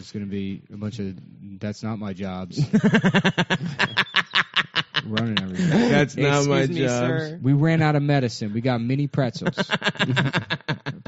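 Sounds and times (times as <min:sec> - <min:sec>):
hearty laughter: 0:02.6 - 0:06.2, 0:09.4 - 0:11.0.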